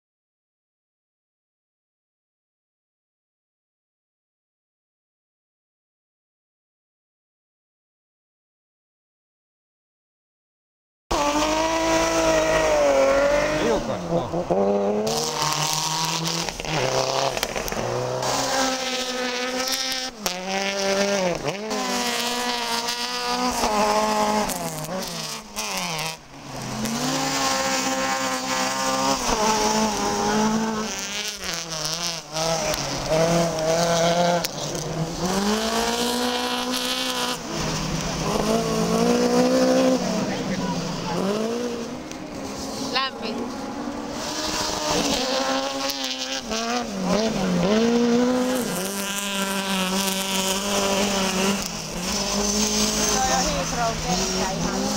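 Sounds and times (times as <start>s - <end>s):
rally car engines revving: 11.1s - 54.9s.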